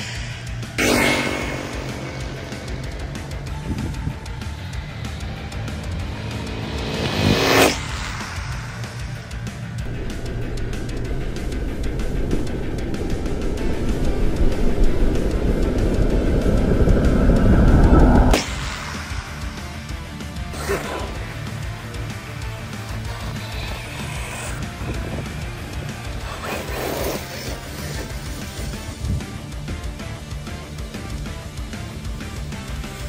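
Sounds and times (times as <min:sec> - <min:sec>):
background music: 0:00.0 - 0:33.0
rc car motor and tyre noise: 0:22.4 - 0:29.3.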